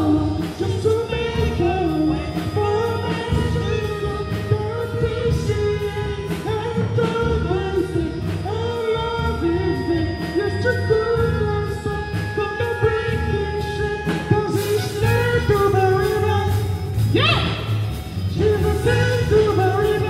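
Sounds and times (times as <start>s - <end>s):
keyboards: 0.0s - 20.0s
live band music: 0.0s - 20.0s
sung vocals: 0.0s - 20.0s.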